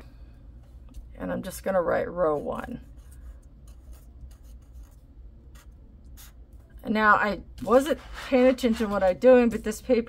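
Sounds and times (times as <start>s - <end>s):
faint low hum: 0.0s - 10.0s
marker scratching on paper: 2.2s - 6.4s, 7.6s - 9.7s.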